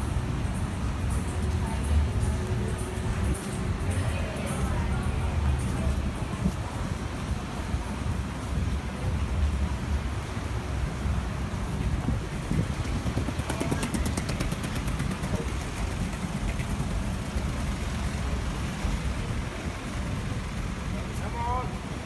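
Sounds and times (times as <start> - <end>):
street traffic rumble: 0.0 - 22.0
fast run of ticks: 12.3 - 18.1.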